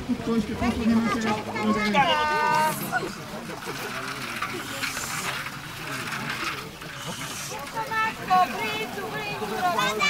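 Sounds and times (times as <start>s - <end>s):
faint background chatter: 0.0s - 10.0s
water sloshing and splashing: 0.0s - 10.0s.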